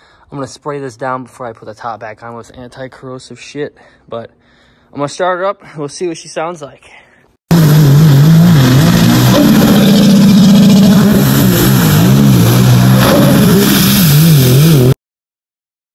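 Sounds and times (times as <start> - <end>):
personal watercraft engine revving: 7.5 - 15.0.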